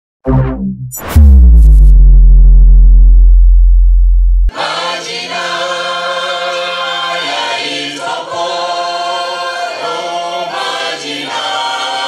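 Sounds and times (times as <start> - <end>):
deep synthesized bass tone: 0.2 - 4.5.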